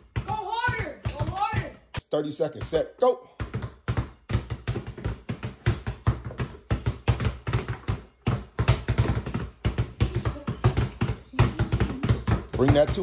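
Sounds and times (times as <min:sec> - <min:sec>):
basketballs dribbling on concrete: 0:00.0 - 0:13.0.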